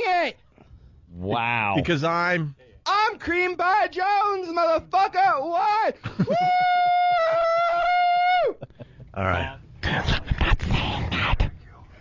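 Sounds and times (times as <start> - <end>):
man yelling into a microphone: 2.9 - 6.0.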